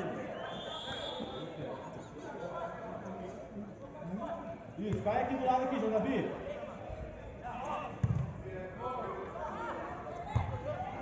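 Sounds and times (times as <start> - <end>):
football being kicked: 8.0 - 8.3.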